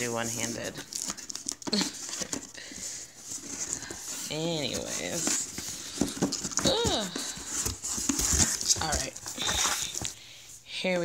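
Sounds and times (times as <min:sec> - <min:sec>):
hands scratching cardboard box: 0:00.0 - 0:10.2.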